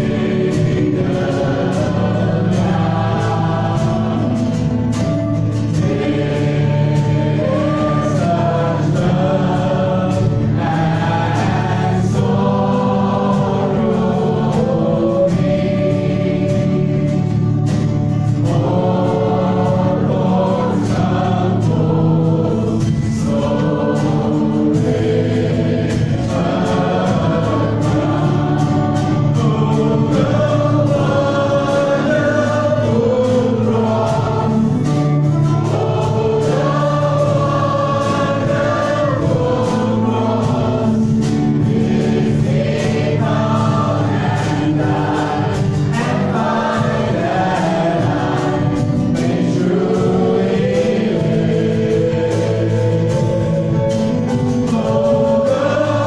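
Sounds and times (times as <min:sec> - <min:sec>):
acoustic guitar: 0:00.0 - 0:56.0
drum kit beat: 0:00.0 - 0:56.0
voices singing: 0:00.0 - 0:56.0.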